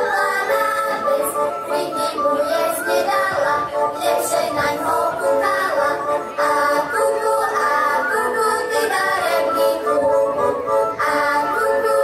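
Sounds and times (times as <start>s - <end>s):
women singing folk song: 0.0s - 12.0s.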